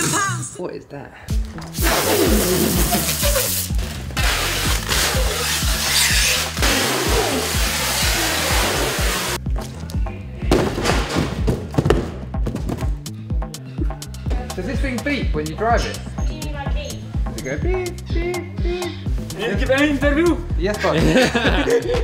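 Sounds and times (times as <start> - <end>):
background music with bass beat: 1.3 - 22.0
loud hiss: 1.8 - 9.4.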